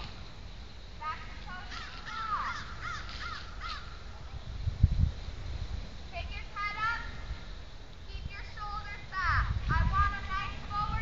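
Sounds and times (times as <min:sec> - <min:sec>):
bird calling: 0:01.1 - 0:04.2.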